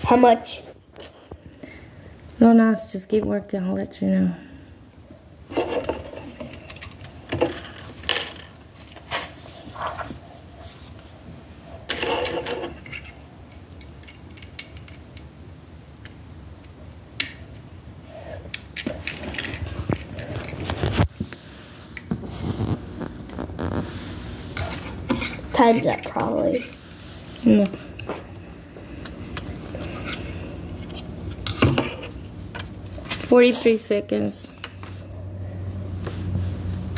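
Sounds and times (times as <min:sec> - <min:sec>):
plastic bricks clicking and rattling: 0:18.5 - 0:21.0.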